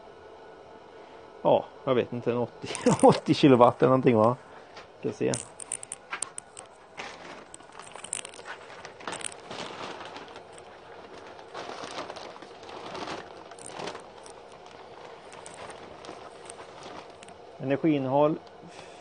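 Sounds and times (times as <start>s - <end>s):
small clicks: 5.3s - 6.8s
plastic sack rustling: 5.4s - 17.4s.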